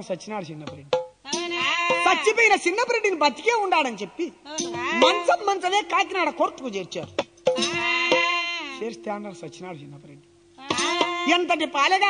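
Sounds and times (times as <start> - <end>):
person singing wavering phrase: 4.5 - 5.5.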